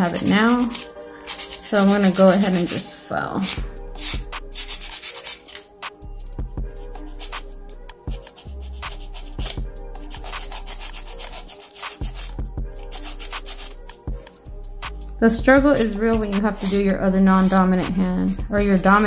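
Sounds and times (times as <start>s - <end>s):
nail file filing nails: 0.0s - 19.0s.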